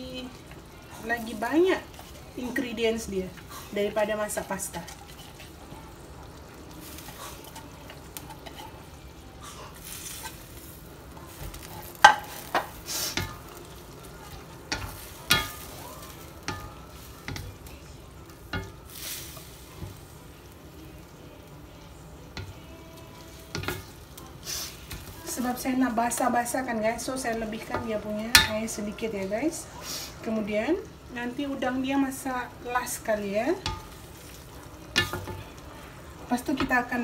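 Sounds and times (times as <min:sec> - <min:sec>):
low sizzle of sauce: 0:00.0 - 0:37.0
spatula knocking and scraping wok: 0:07.0 - 0:08.8, 0:11.2 - 0:13.6, 0:14.2 - 0:17.7, 0:23.3 - 0:24.0, 0:27.3 - 0:28.8, 0:33.5 - 0:35.6.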